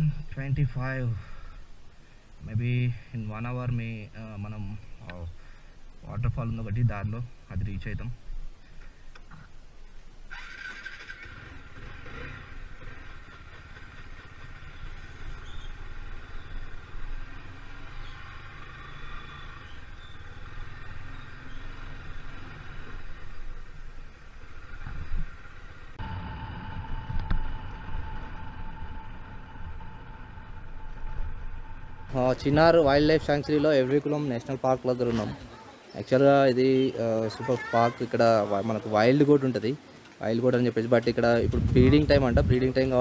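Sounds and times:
motorcycle engine running: 10.3 - 33.0.

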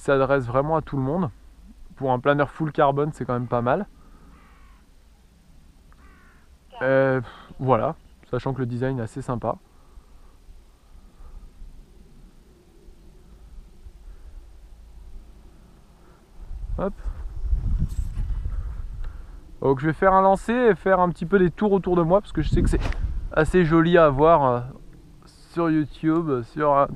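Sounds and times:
wind buffeting microphone: 16.3 - 20.4, 21.4 - 25.2.

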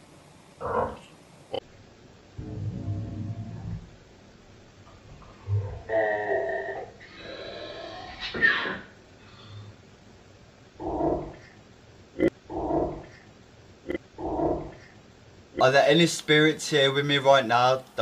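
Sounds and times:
slowed growl-like voice: 2.4 - 4.0, 5.4 - 8.3
low moans: 2.4 - 4.1, 5.0 - 8.3.

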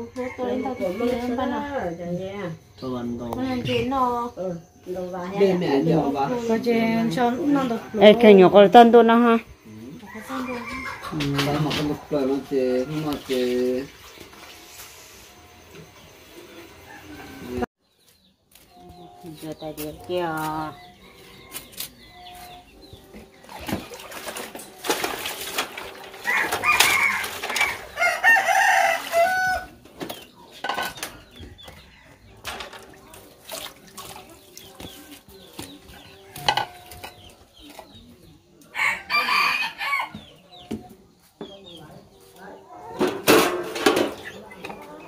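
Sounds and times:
rooster crowing: 0.0 - 1.7, 9.8 - 13.2, 16.6 - 17.7, 26.2 - 29.8, 38.7 - 40.2
plates and trays clinking: 30.0 - 31.2, 36.3 - 37.9, 43.0 - 44.9.

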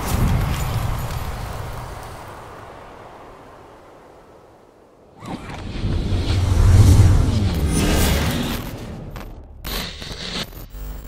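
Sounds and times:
glitchy crackling bursts: 5.2 - 11.0.

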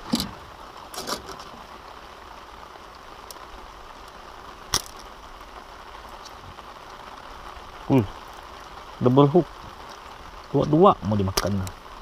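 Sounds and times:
steady rain hiss: 0.0 - 12.0.

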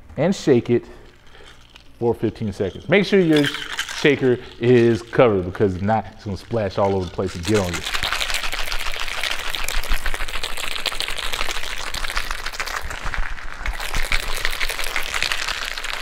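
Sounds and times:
ice rattling in cocktail shaker: 1.0 - 16.0.

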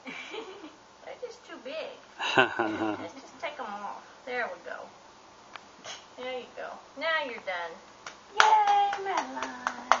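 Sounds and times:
hands clapping: 8.0 - 10.0.

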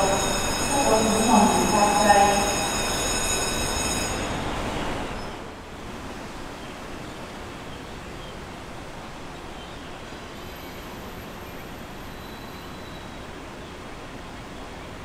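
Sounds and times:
loudspeaker announcement: 0.0 - 2.7
steady high-pitched tone: 0.0 - 4.6
faint street ambience: 0.0 - 15.0.

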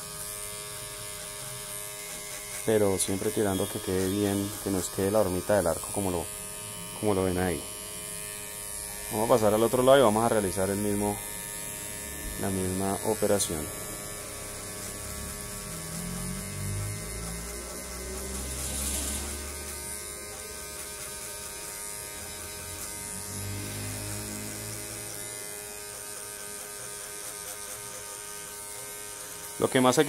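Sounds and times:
electric hair clippers humming: 0.0 - 30.0.

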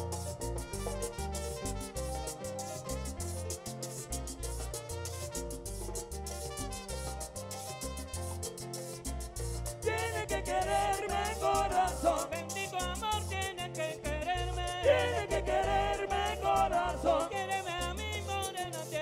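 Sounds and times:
latin dance orchestra playing: 0.0 - 19.0
trumpet section: 0.7 - 4.0, 4.7 - 5.7.

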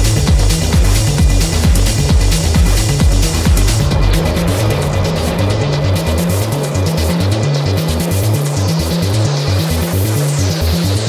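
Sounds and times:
kick drum hits: 0.0 - 5.1
hard techno music: 0.0 - 11.0
stepping bass line: 0.0 - 11.0
ticking hi-hats: 0.0 - 11.0.

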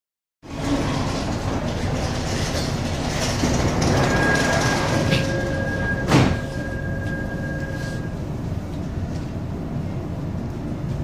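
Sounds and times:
train carriage noise: 0.4 - 11.0.

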